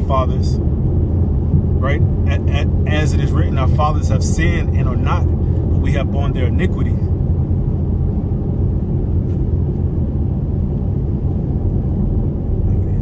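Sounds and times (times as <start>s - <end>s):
car cabin road rumble: 0.0s - 13.0s.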